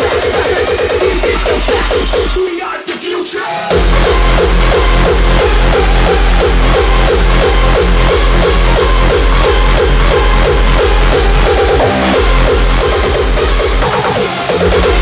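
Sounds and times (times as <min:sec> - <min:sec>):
pounding kick drum: 0:00.0 - 0:02.5, 0:03.7 - 0:15.0
synth riff stabs: 0:03.7 - 0:15.0.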